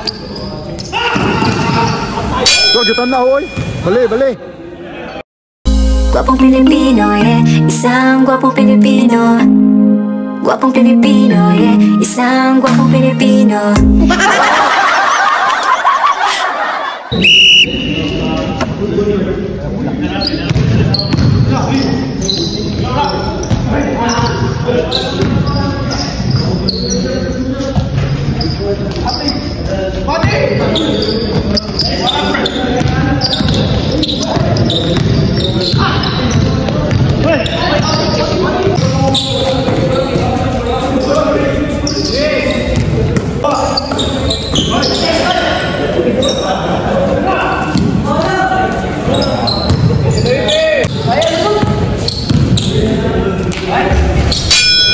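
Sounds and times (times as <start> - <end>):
players' voices echoing: 0.0 - 54.9
basketball bouncing on court floor: 20.5 - 21.5, 34.2 - 38.2.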